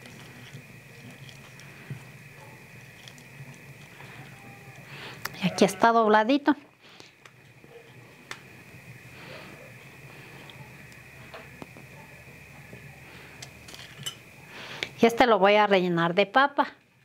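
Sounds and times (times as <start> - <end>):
faint high whine: 0.0 - 17.0.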